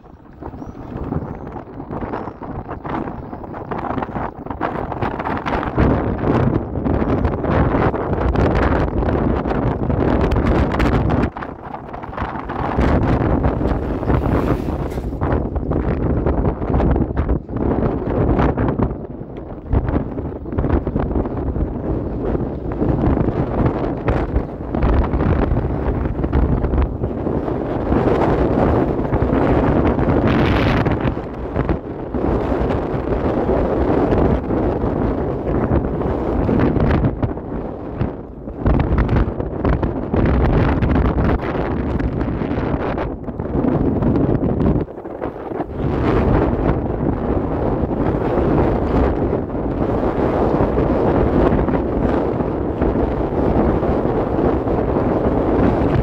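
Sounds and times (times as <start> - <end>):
wind buffeting microphone: 0.0 - 56.0
scooter rumbling on paving stones: 10.0 - 16.3.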